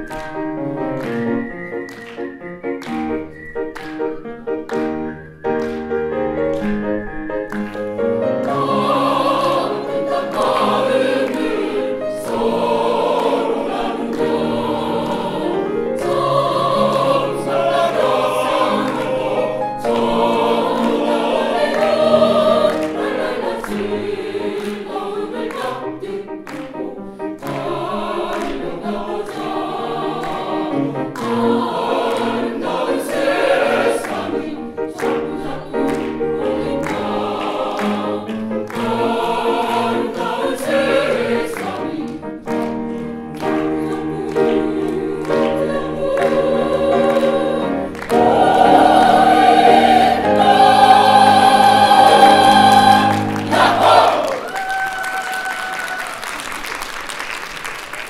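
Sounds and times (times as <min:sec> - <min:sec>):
grand piano: 0:00.0 - 0:58.0
mixed choir singing: 0:07.5 - 0:54.8.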